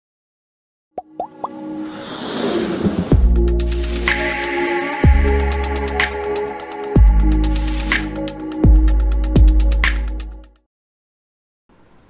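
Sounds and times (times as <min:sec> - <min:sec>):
rising pops: 0:01.0 - 0:03.4.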